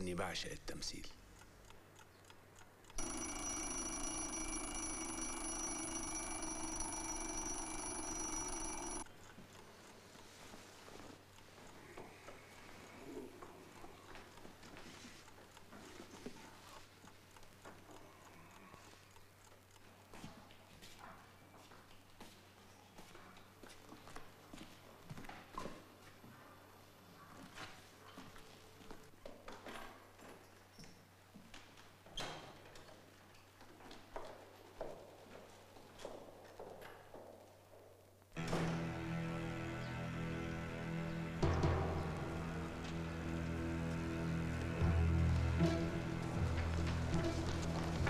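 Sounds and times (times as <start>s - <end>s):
alarm clock ringing: 3.0s - 9.1s.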